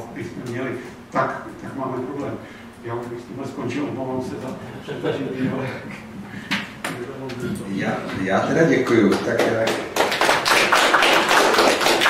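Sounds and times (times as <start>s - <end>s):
audience applauding: 9.0s - 12.0s.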